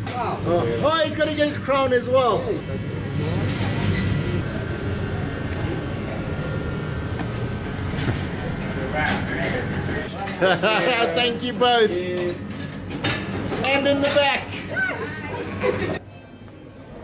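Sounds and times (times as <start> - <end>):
steady low hum: 0.0 - 13.6.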